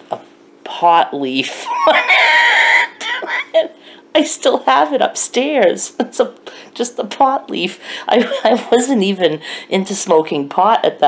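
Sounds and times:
woman cackling laughter: 0:01.6 - 0:03.6.

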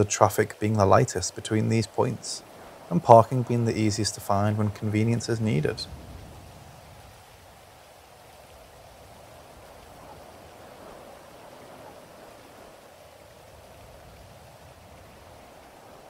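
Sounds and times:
faint steady rain: 0:00.0 - 0:16.0.

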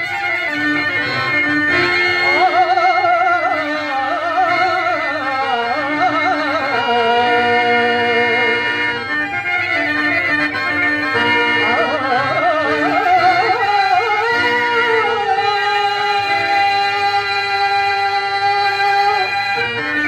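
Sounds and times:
clarinet: 0:00.0 - 0:05.1
harmonium steady tones: 0:00.0 - 0:20.0
man singing ornamented verse: 0:11.6 - 0:19.3.

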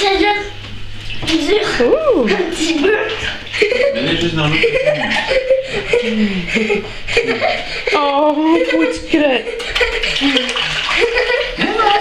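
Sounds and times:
water running into bathtub: 0:00.0 - 0:12.0.

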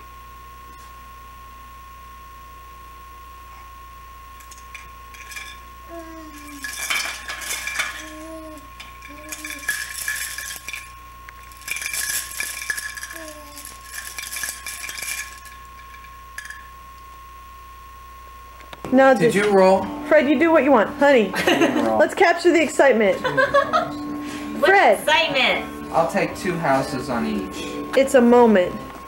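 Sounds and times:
plastic toy links rattling: 0:04.4 - 0:16.7
baby cooing: 0:05.9 - 0:09.9, 0:13.0 - 0:13.8.

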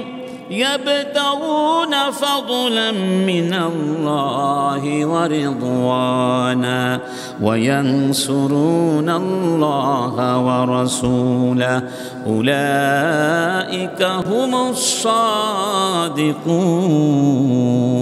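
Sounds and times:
man chanting melodically: 0:00.0 - 0:18.0.

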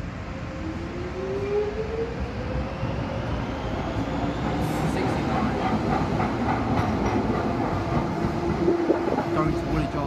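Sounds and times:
train passing on rails: 0:00.0 - 0:10.0.

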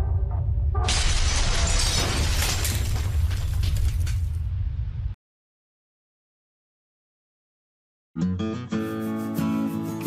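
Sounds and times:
crash of shattering debris: 0:00.8 - 0:04.6.

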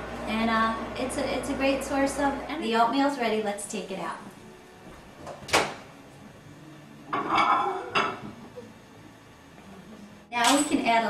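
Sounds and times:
bowl scraping and rattling: 0:07.1 - 0:08.2
dish clink: 0:07.1 - 0:08.2.

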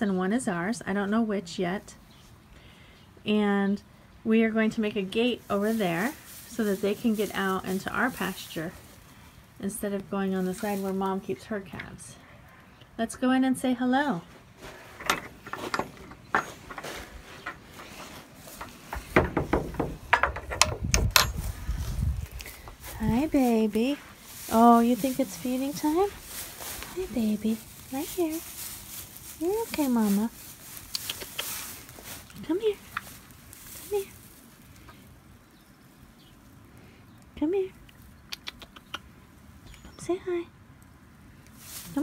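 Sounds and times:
rustling in hay: 0:05.0 - 0:11.5, 0:14.2 - 0:15.7, 0:16.4 - 0:19.2, 0:21.4 - 0:36.7, 0:41.4 - 0:42.0
footsteps: 0:05.1 - 0:09.1, 0:14.2 - 0:35.0
knocks against wooden rails: 0:15.0 - 0:21.4.

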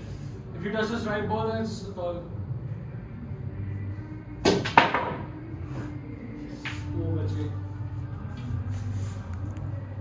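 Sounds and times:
cue tip striking ball: 0:04.4 - 0:05.4
pool balls colliding: 0:04.4 - 0:05.5.

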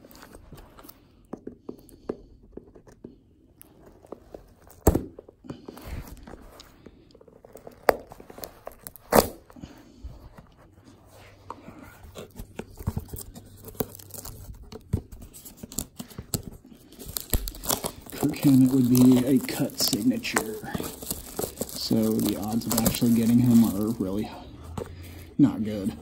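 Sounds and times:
handling rustles: 0:02.7 - 0:26.0
plastic wrap tearing and crinkling: 0:07.4 - 0:09.6, 0:12.2 - 0:24.5.

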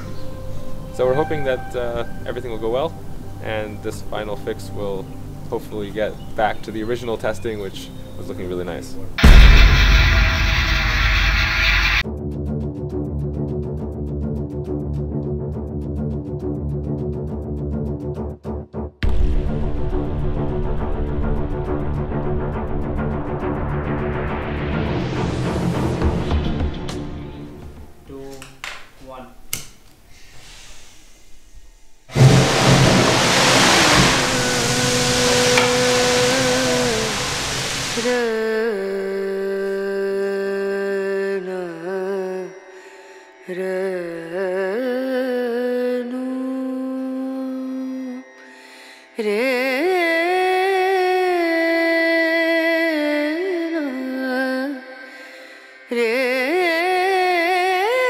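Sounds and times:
rocket motor rushing roar: 0:32.1 - 0:38.0.

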